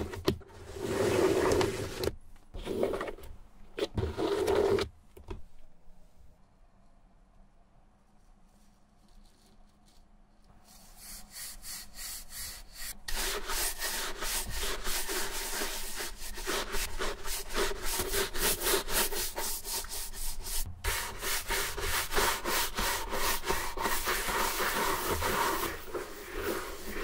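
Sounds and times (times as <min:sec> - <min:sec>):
brush strokes on leather boot: 0:10.7 - 0:27.0.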